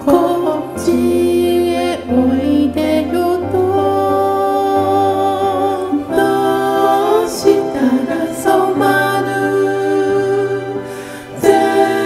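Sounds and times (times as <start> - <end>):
soft piano: 0.0 - 12.0.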